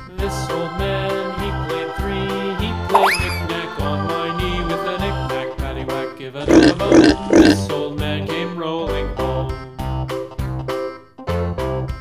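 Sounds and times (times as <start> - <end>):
children's background music: 0.1 - 9.4
pig grunting: 6.4 - 7.7.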